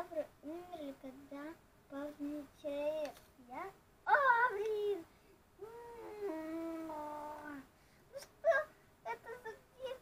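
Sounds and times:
girl singing long wordless note: 0:04.1 - 0:07.7.

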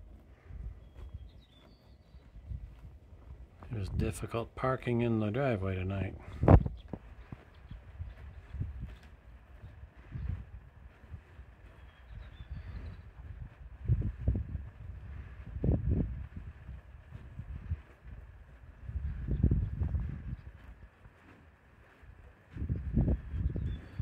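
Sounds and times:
bison grazing low sounds: 0:00.0 - 0:24.0.

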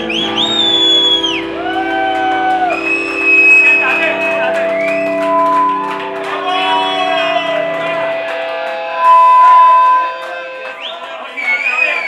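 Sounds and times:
held high note: 0:00.0 - 0:10.8
live rock band: 0:00.0 - 0:10.8.

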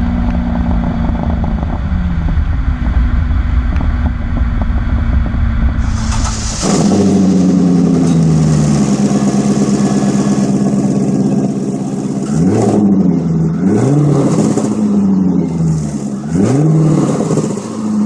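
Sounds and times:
car engine idling and revving: 0:00.0 - 0:18.0.

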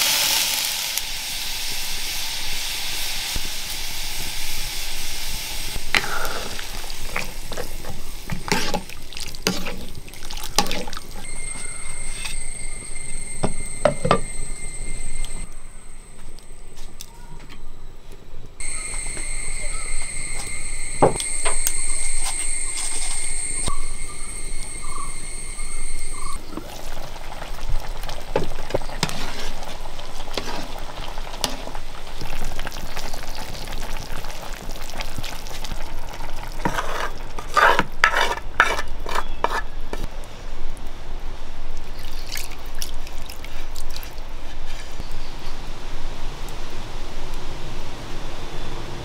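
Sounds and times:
curry sizzling in a pan: 0:00.0 - 0:15.5, 0:18.6 - 0:40.0
curry being stirred: 0:06.7 - 0:14.6, 0:36.3 - 0:40.1
metal spatula scraping paste: 0:08.5 - 0:08.8, 0:09.4 - 0:09.9, 0:36.6 - 0:40.0.

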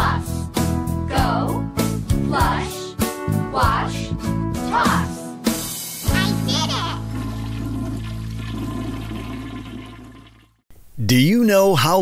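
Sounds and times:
toilet flushing: 0:06.5 - 0:10.6.

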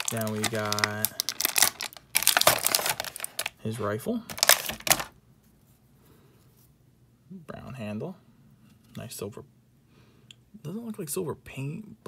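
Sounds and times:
plastic bag crinkling: 0:00.0 - 0:05.2.

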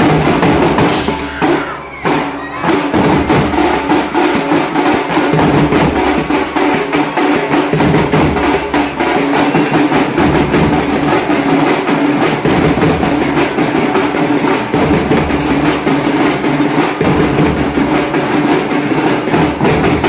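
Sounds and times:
frame drums beaten with sticks: 0:00.0 - 0:20.0.

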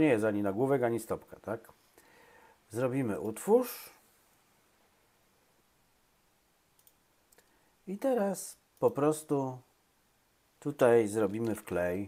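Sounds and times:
computer mouse clicks: 0:06.8 - 0:07.6.

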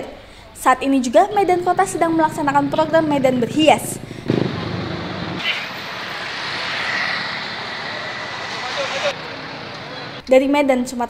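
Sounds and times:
traffic: 0:00.4 - 0:10.3.

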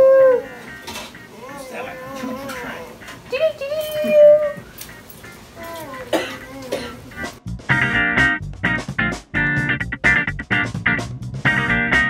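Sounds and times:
strummed guitar music: 0:00.2 - 0:03.3, 0:04.7 - 0:12.0
baby vocalizing: 0:00.4 - 0:03.0, 0:05.6 - 0:07.4.

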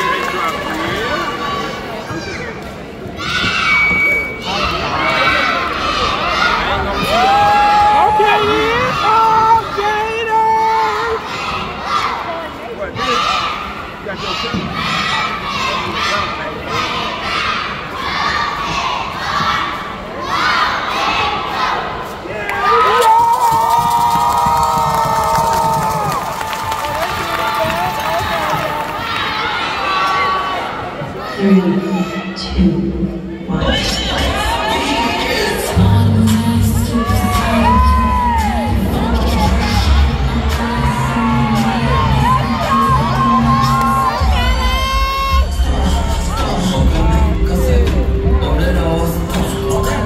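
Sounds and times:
crowd cheering and shouting: 0:00.0 - 0:50.0
high-pitched voices yelling and cheering: 0:33.6 - 0:50.0.

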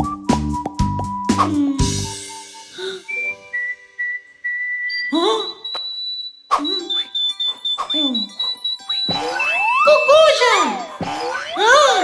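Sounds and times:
cartoon whistling tune: 0:02.3 - 0:12.0.

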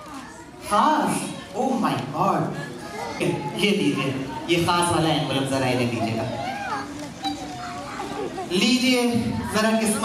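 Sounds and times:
audience calling out and chattering: 0:00.0 - 0:10.0.

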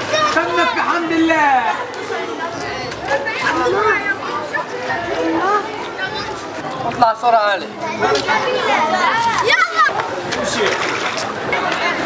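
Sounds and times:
children calling and chattering: 0:00.0 - 0:12.0
street ambience: 0:00.0 - 0:12.0.

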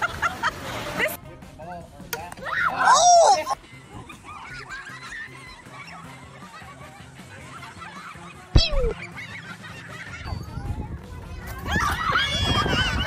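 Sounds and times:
people laughing: 0:00.0 - 0:01.2, 0:03.4 - 0:10.7, 0:11.6 - 0:13.0
background music: 0:00.0 - 0:13.0.

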